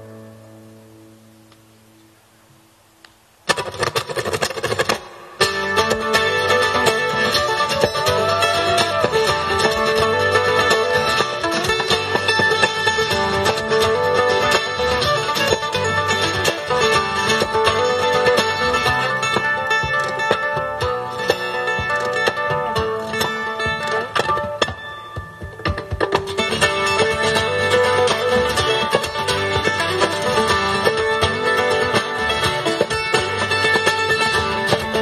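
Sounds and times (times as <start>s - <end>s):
plucked strings: 3.0s - 35.0s
acoustic guitar strumming: 3.4s - 35.0s.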